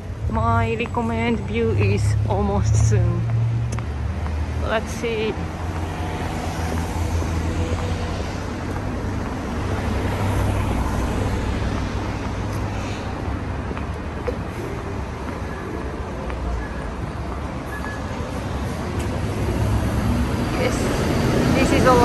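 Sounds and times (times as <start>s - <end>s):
traffic rumble: 0.0s - 22.0s.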